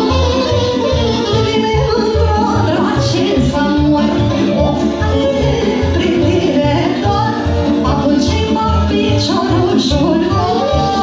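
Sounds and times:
accordion: 0.0 - 11.0
woman singing into a microphone: 0.0 - 11.0.

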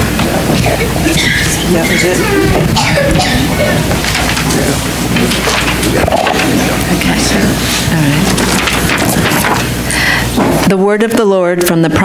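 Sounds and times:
microphone handling crackle: 0.0 - 10.7
low steady hum: 0.0 - 12.0.

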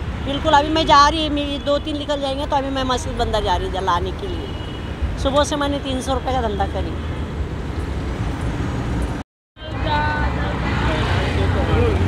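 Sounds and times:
cars and motorbikes passing: 0.0 - 12.0.

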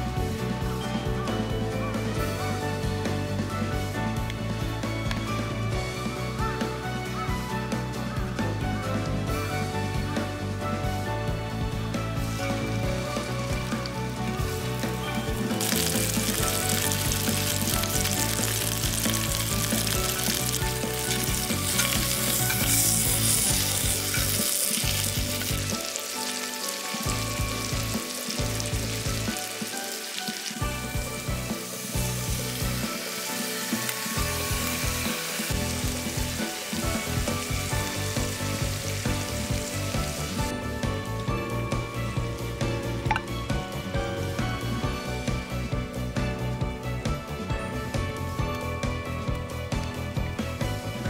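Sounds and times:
meat sizzling in a skillet: 12.3 - 40.5.

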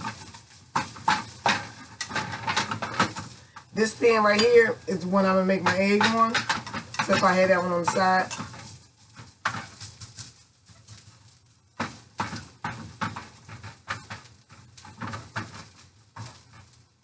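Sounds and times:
spatula scraping frying pan: 0.0 - 17.0.

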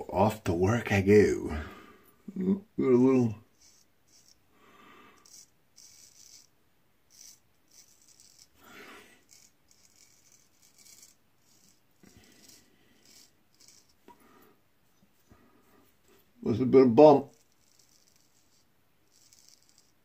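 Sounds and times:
razor scraping stubble: 3.5 - 4.4, 5.2 - 6.5, 7.1 - 14.2, 17.0 - 20.0.

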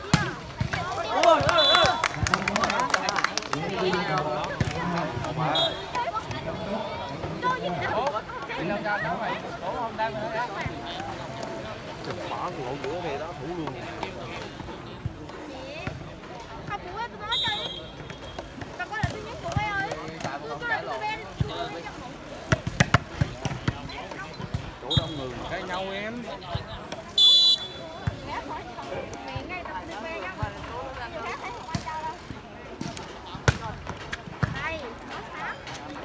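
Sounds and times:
spectators chattering and calling: 0.0 - 36.0
referee's whistle: 27.2 - 27.9.

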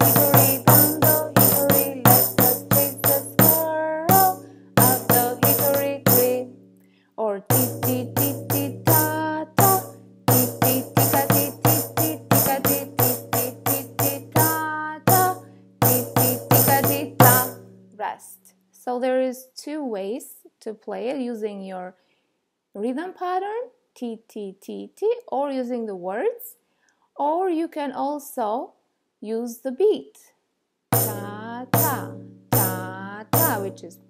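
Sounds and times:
tambourine struck with drumstick: 0.0 - 6.5, 7.5 - 17.7, 31.0 - 33.9.

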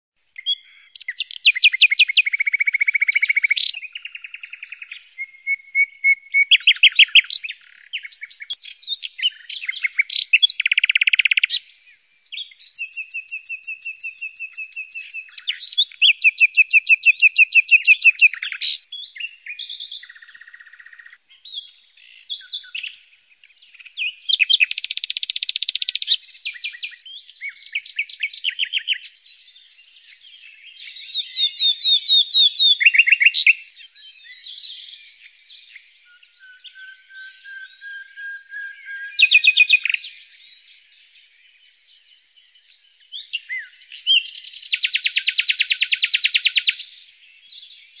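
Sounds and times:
nightingale singing: 0.2 - 48.0.

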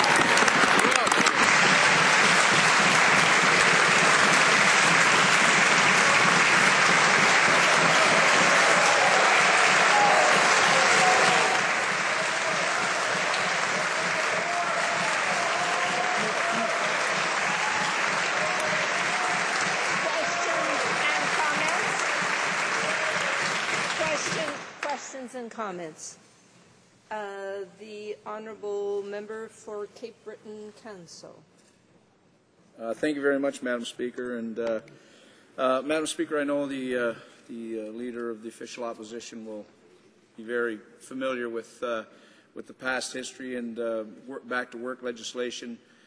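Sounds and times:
audience applauding: 0.0 - 25.1.

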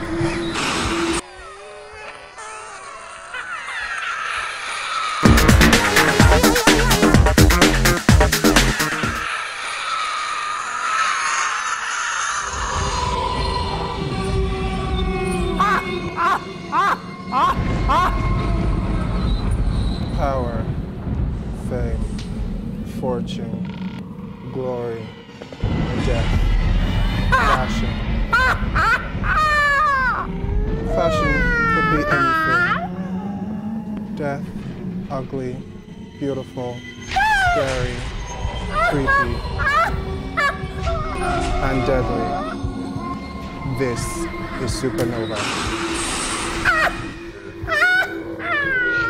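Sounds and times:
low drone: 0.0 - 49.0
intro music: 5.2 - 9.2
low rumble: 17.5 - 32.0.

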